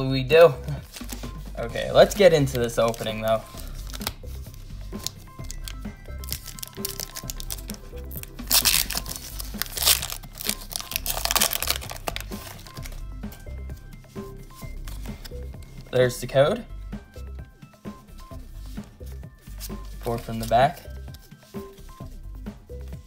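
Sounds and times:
background music with pulsing bass: 0.0 - 23.0
foil wrapper crinkling and tearing: 2.4 - 4.2, 4.9 - 13.0.

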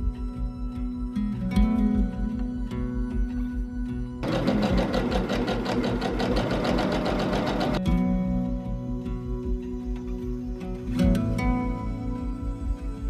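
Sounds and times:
background music: 0.0 - 13.0
sewing machine stitching: 4.2 - 7.8.

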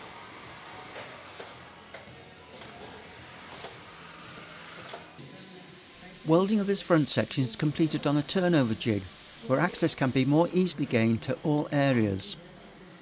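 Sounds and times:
faint factory noise: 0.0 - 13.0
quiet background music: 0.0 - 13.0.

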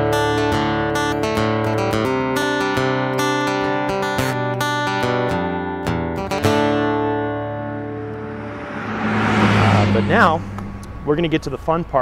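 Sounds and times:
strummed acoustic guitar chord: 0.0 - 10.8
faint wash of noise: 7.8 - 11.3.

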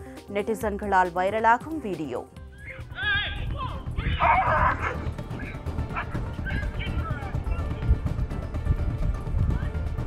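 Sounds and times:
background music: 0.0 - 10.0
dog barking: 4.2 - 6.2.

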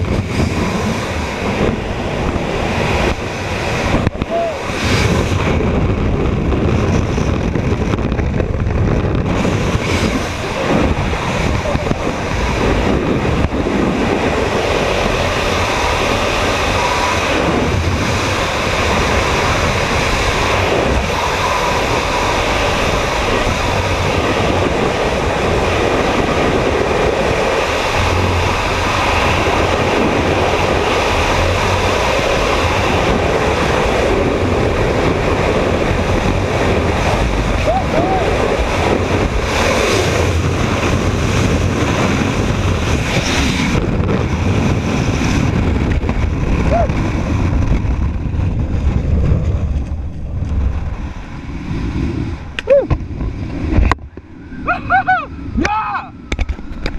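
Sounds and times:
wind buffeting microphone: 0.0 - 56.9.

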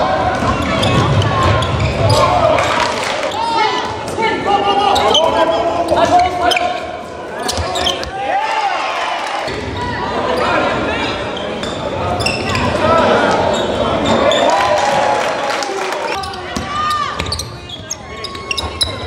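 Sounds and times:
sneakers squeaking: 0.2 - 4.2, 4.8 - 15.0, 16.1 - 19.0.

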